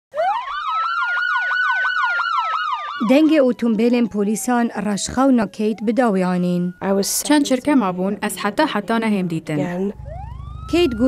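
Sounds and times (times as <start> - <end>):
police siren fast yelp: 0.1 - 7.2, 9.9 - 11.0
police siren slow wail: 0.1 - 7.3, 9.9 - 11.0.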